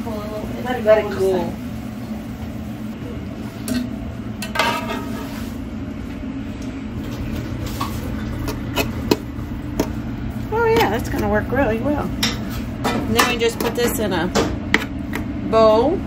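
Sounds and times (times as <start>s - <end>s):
steady low hum: 0.0s - 16.0s
utensils and dishes clinking: 12.0s - 14.9s.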